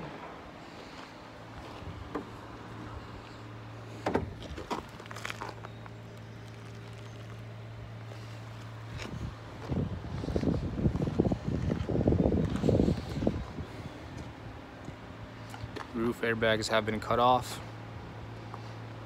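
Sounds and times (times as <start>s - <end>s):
low hum: 0.0s - 16.0s
footsteps crunching on gravel: 0.8s - 3.4s, 4.2s - 14.4s.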